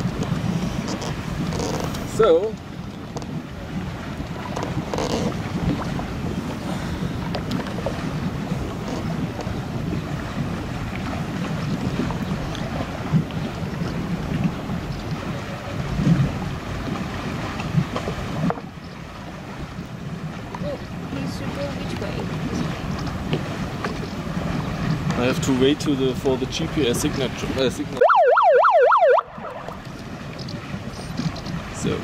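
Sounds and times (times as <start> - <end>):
motorboat engine running: 0.0 - 32.0
water lapping on hull: 0.0 - 32.0
wind buffeting microphone: 0.0 - 32.0.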